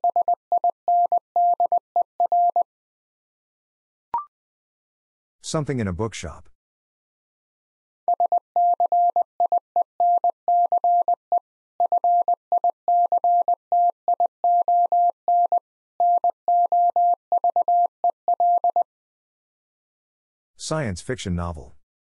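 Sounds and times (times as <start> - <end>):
morse code tone: 11.8 - 18.9.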